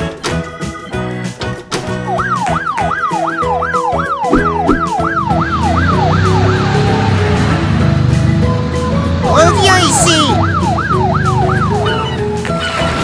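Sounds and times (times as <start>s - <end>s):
background music: 0.0s - 13.0s
police siren sweeping: 2.1s - 7.5s, 9.4s - 12.4s.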